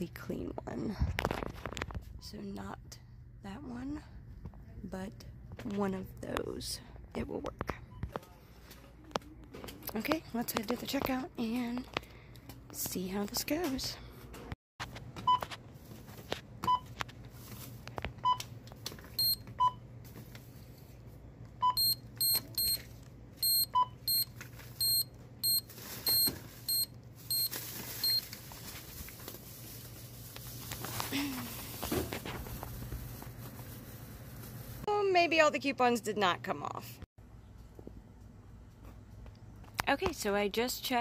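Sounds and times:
card reader key beeps: 0:19.2 - 0:19.8, 0:21.6 - 0:22.8, 0:23.4 - 0:28.2
scanner beeps: 0:19.2 - 0:19.8, 0:21.6 - 0:22.8, 0:23.4 - 0:28.2.

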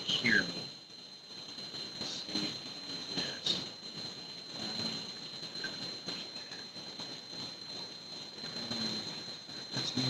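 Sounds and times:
high-pitched whine: 0:00.0 - 0:10.0.

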